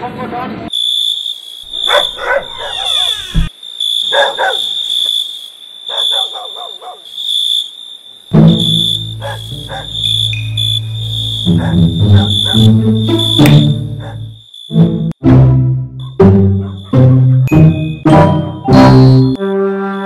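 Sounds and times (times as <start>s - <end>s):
crickets chirping: 0.7s - 14.9s, 16.0s - 17.0s
dog barks: 1.7s - 3.3s, 4.0s - 4.8s, 5.9s - 7.1s, 9.1s - 10.2s, 11.4s - 12.8s, 13.4s - 14.4s, 16.0s - 17.5s.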